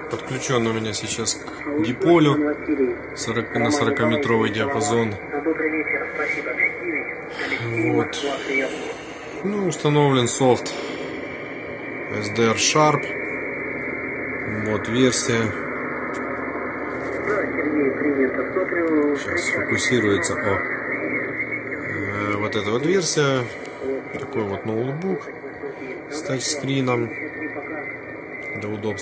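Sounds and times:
thin hissy radio voice: 0:00.0 - 0:11.2, 0:17.0 - 0:29.0.

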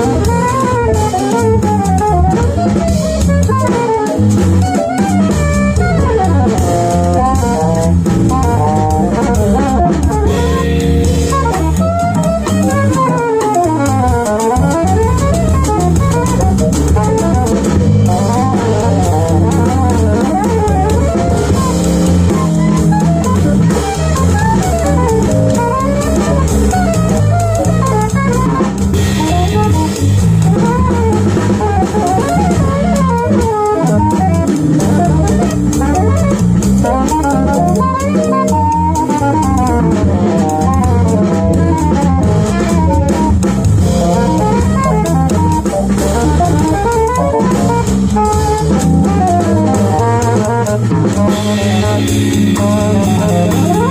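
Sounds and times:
alto saxophone melody: 0:00.0 - 0:53.9
drum kit with cymbals: 0:00.0 - 0:53.9
electric bass: 0:00.0 - 0:53.9.

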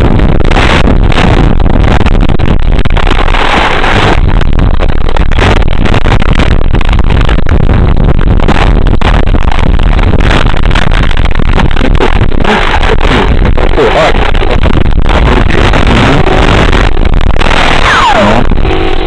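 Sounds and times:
distorted rushing noise: 0:00.0 - 0:19.0
microphone handling crackles and knocks: 0:00.0 - 0:19.0.

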